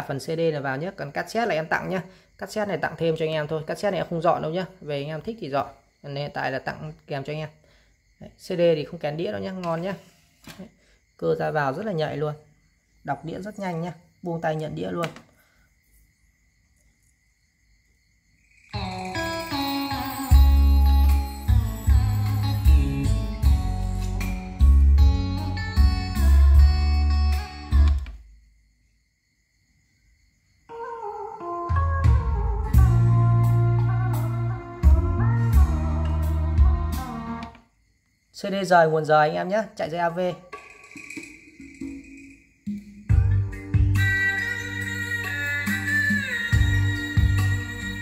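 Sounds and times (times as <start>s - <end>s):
steady high tone: 18.7s - 22.9s
music from speakers: 18.8s - 28.1s, 31.8s - 37.5s, 43.1s - 48.0s.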